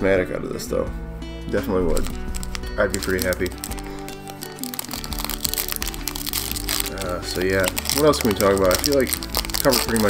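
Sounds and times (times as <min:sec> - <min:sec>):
background music: 0:00.0 - 0:10.0
foil pack crinkling and tearing: 0:01.9 - 0:10.0.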